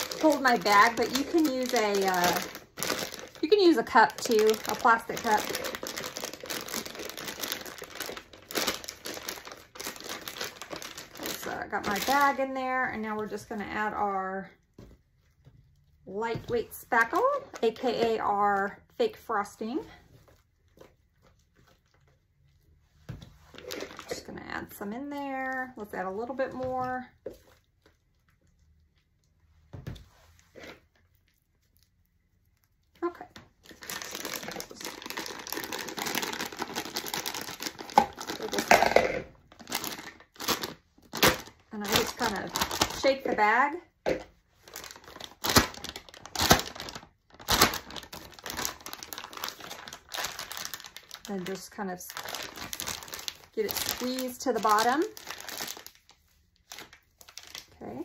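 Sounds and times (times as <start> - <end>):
plastic bag crinkling: 0.0 - 13.9, 23.5 - 28.0, 32.9 - 43.8, 44.5 - 58.0
plastic crackles: 0.0 - 58.0.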